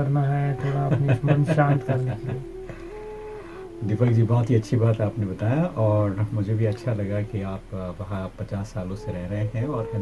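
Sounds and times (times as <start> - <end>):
person talking: 0.0 - 2.5
man laughing: 0.6 - 2.4.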